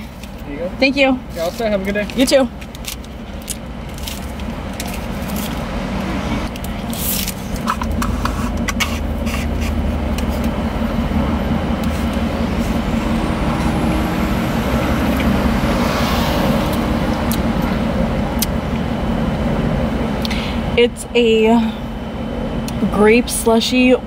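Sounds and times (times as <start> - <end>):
car idling with air conditioning: 0.0 - 15.9, 16.5 - 24.0.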